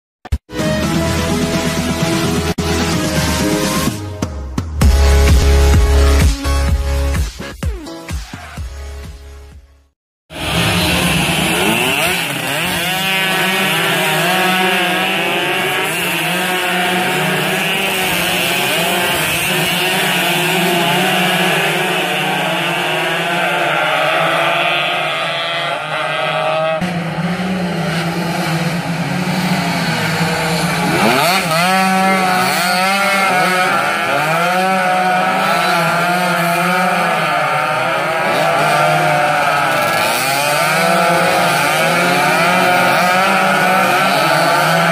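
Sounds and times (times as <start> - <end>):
two-stroke motorcycles racing past: 10.3 - 44.9.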